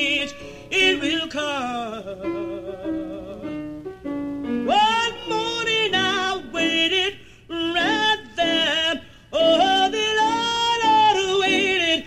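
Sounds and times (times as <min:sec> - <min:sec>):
solo voice singing long notes: 0:00.0 - 0:03.7, 0:04.7 - 0:12.0.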